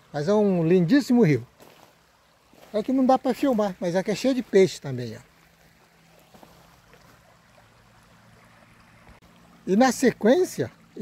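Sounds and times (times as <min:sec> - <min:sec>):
stream running over gravel: 0:00.0 - 0:11.0.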